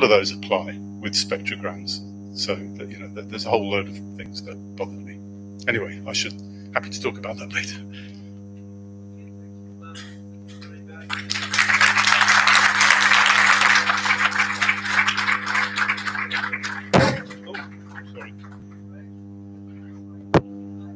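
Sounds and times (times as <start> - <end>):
electrical hum: 0.0 - 20.9
audience applause: 10.6 - 18.8
microphone thump: 16.9 - 17.5, 20.3 - 20.6.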